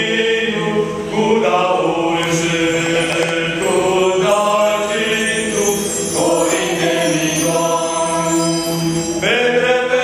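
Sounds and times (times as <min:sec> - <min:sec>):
mixed choir singing carol: 0:00.0 - 0:10.0.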